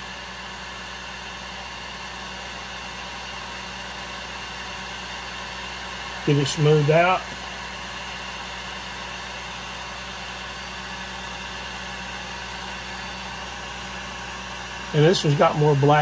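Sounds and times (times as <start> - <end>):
heat gun blowing air: 0.0 - 16.0.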